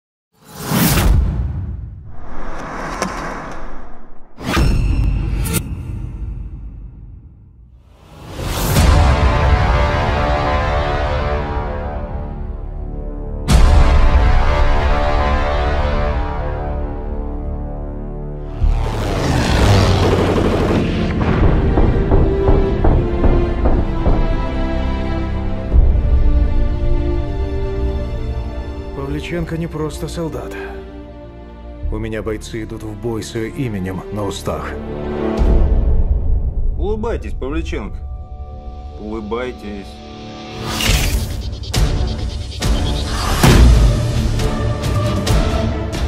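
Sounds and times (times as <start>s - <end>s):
dramatic trailer music: 0.4s - 46.0s
whoosh with deep boom: 0.9s - 7.5s.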